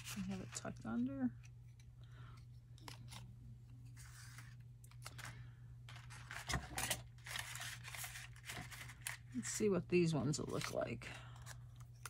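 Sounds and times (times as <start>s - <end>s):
paper rustling and crinkling: 0.0s - 1.1s, 2.8s - 9.6s.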